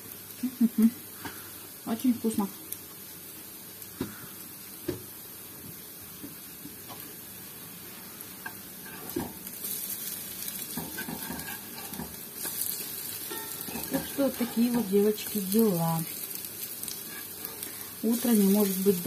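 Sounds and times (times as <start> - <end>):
fritters sizzling in oil: 0.0 - 19.0.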